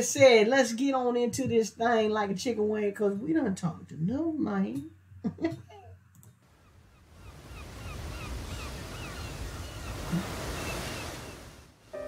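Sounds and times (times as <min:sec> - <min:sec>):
ocean surf washing: 0:06.5 - 0:12.0
short high seabird calls: 0:06.6 - 0:11.5.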